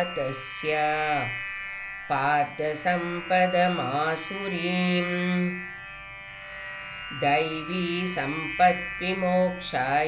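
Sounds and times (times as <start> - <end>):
faint instrumental drone: 0.0 - 10.0.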